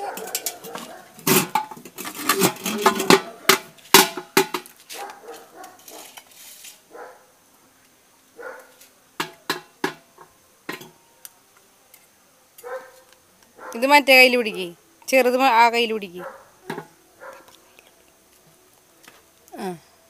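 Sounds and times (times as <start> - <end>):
sticks beating on a metal bucket: 0.2 - 4.7, 9.2 - 11.0.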